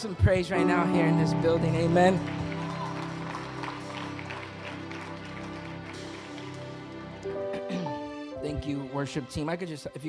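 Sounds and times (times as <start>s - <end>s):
soft worship music chords: 0.0s - 10.0s.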